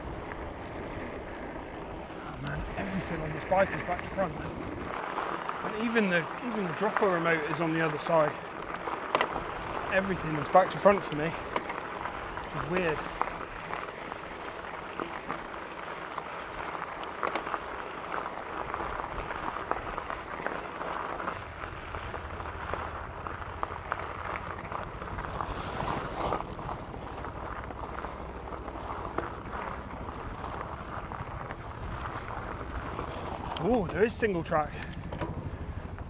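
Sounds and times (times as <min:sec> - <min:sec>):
deeper rumble: 0:00.0 - 0:08.5, 0:21.3 - 0:36.0
bike rattling with small clicks: 0:00.0 - 0:36.0
bike tyres crunching on gravel: 0:00.0 - 0:36.0.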